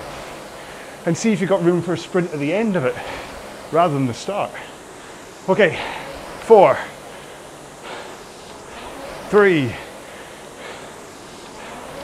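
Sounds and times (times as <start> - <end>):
rowing machine whoosh: 0.0 - 12.0.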